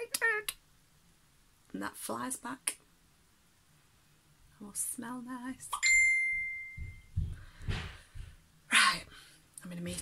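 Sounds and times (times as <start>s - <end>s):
phone notification ding: 5.8s - 7.1s.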